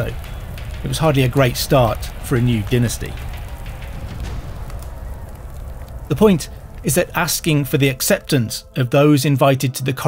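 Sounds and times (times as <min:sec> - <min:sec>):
low sustained drone music: 0:00.0 - 0:10.0.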